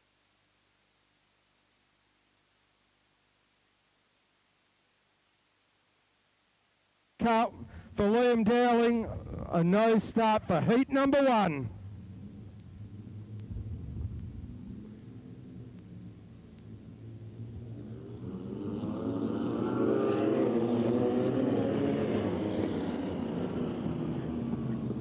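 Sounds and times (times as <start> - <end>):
race car engines humming: 7.3 - 25.0.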